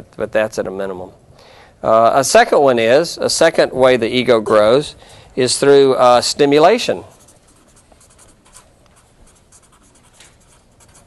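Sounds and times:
scratching of writing on a board: 7.1s - 11.0s.

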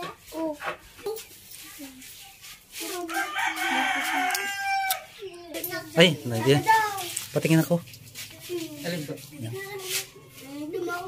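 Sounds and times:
rooster crowing: 3.1s - 5.2s.

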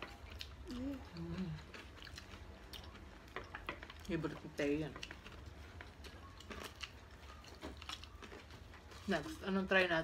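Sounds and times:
chewing crispy food: 0.0s - 10.0s.

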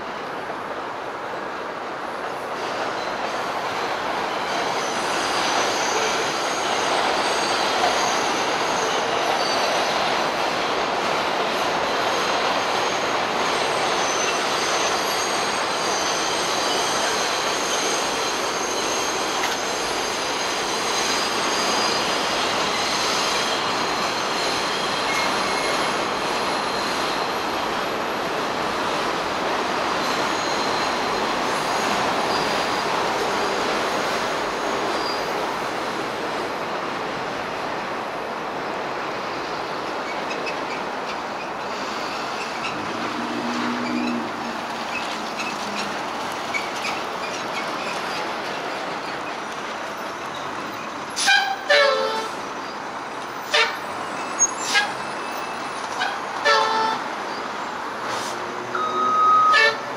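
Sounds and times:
train rumble: 0.0s - 59.9s
train wheels squealing on rails: 2.2s - 37.3s, 39.0s - 59.9s.

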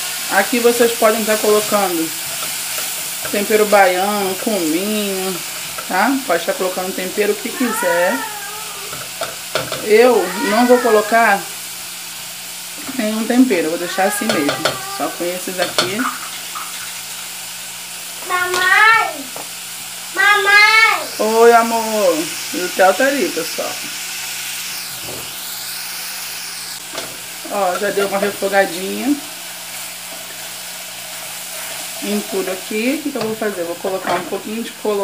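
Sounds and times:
food sizzling in a pot: 0.0s - 35.0s
child calling out: 7.4s - 9.0s, 9.9s - 11.5s, 13.7s - 15.3s, 18.2s - 19.3s, 20.2s - 21.2s.

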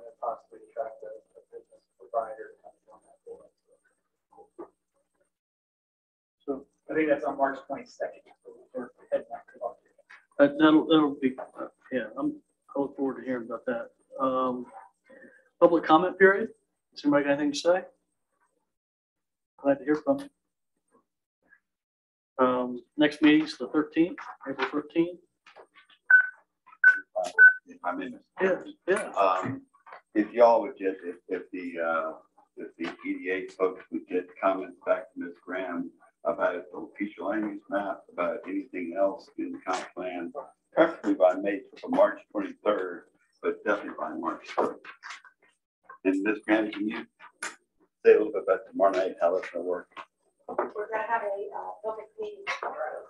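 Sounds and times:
people talking: 0.0s - 3.4s, 6.5s - 9.8s, 10.4s - 17.8s, 19.6s - 20.2s, 22.4s - 25.2s, 26.8s - 29.6s, 30.2s - 45.2s, 46.0s - 47.5s, 48.1s - 49.8s, 50.5s - 53.0s
person speaking: 0.0s - 3.4s, 6.5s - 17.8s, 19.6s - 20.2s, 22.4s - 25.2s, 26.8s - 45.2s, 46.1s - 47.5s, 48.1s - 53.0s
short electronic beeps: 26.1s - 27.7s.

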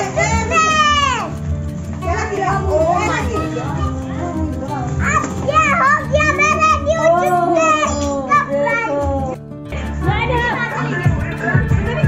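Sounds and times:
children shouting excitedly: 0.0s - 1.4s, 5.0s - 9.4s
background music with low beat: 0.0s - 12.0s.

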